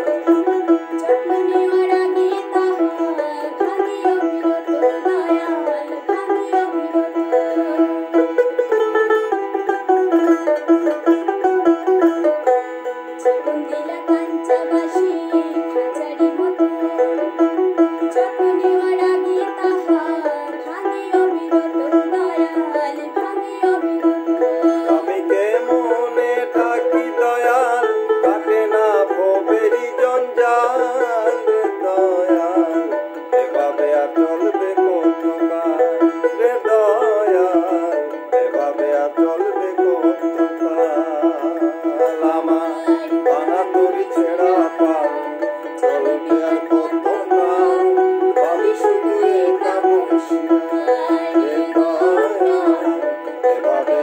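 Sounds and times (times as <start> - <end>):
man and woman singing: 0.0 - 12.0, 13.1 - 54.0
plucked lute playing: 0.0 - 54.0.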